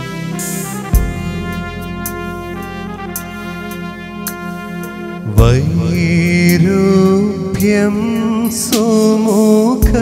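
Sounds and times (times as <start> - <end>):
keyboard chords: 0.0 - 10.0
man singing: 5.2 - 10.0.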